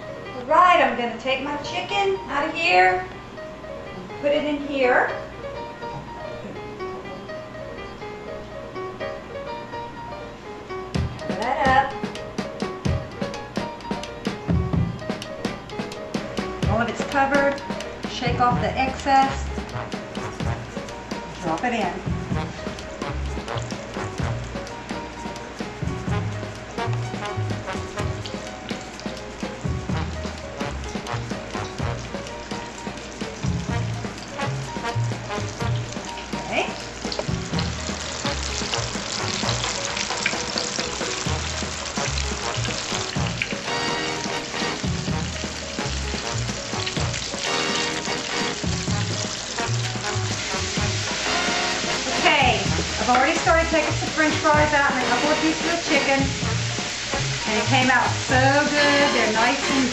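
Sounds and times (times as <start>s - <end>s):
chicken deep-frying in oil: 10.9s - 59.9s.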